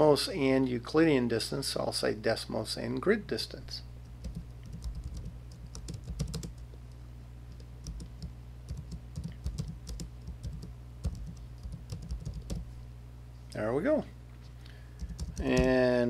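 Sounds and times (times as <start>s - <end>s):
steady low hum: 0.0s - 16.0s
typing on computer keyboard: 4.2s - 6.6s, 7.6s - 12.6s, 15.0s - 15.7s.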